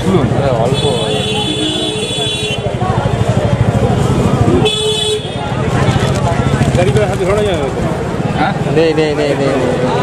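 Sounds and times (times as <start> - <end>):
low rumble of traffic: 0.0 - 10.0
voices: 0.0 - 10.0
vehicle horn honking: 0.7 - 2.8, 4.6 - 5.6.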